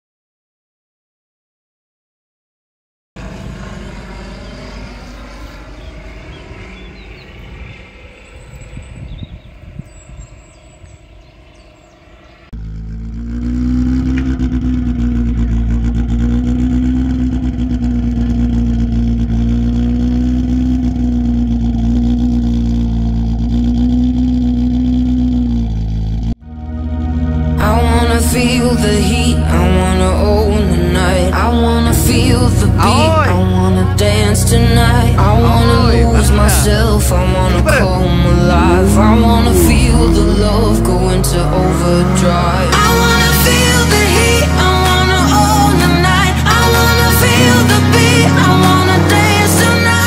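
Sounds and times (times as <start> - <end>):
rally car engine running: 3.2 - 50.0.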